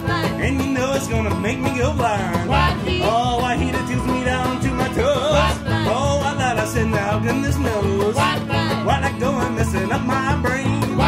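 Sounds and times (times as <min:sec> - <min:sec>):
acoustic guitar: 0:00.0 - 0:11.0
banjo: 0:00.0 - 0:11.0
mandolin: 0:00.0 - 0:11.0
upright bass: 0:00.0 - 0:11.0.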